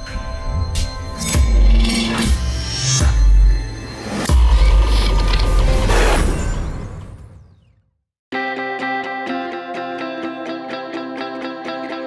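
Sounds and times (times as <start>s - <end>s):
mechanical creaking: 4.2s - 6.5s.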